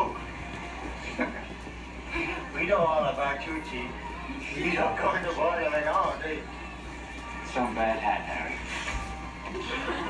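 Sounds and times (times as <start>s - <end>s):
low background murmur: 0.0s - 10.0s
steady hum: 0.0s - 10.0s.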